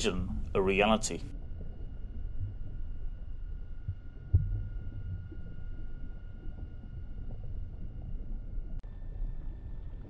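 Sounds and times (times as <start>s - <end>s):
low throbbing ambient rumble: 0.0s - 10.0s.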